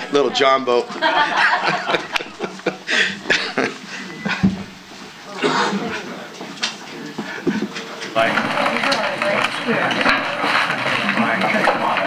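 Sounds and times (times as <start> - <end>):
laughter: 0.8 - 4.6.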